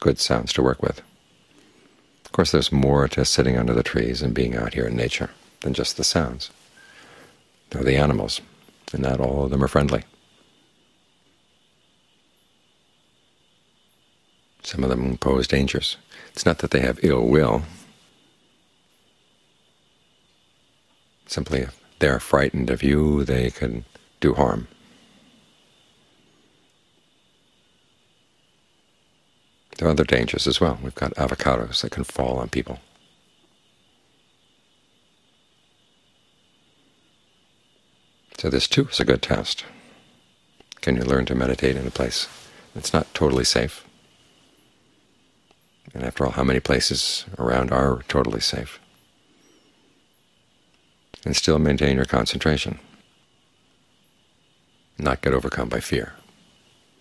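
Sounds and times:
crickets chirring: 0:00.0 - 0:57.0
high-pitched insect chorus: 0:00.0 - 0:57.0.

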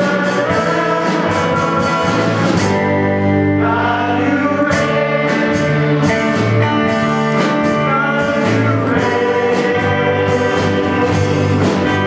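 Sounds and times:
drum kit: 0:00.0 - 0:12.0
electric guitars: 0:00.0 - 0:12.0
people singing: 0:00.0 - 0:12.0
worship rock band playing: 0:00.0 - 0:12.0.

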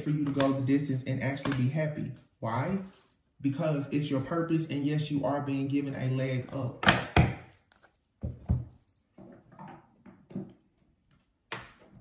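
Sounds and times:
faint rummaging: 0:02.8 - 0:03.3, 0:07.5 - 0:11.5
objects knocking and thudding: 0:06.5 - 0:10.7.

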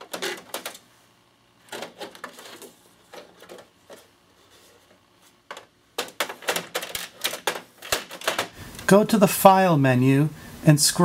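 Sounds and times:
printer clicking and tapping: 0:05.5 - 0:08.6.

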